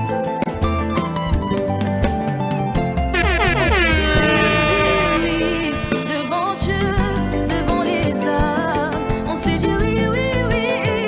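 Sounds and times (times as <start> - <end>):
horn blast sliding down: 3.1 - 7.5
loud music: 3.1 - 7.9.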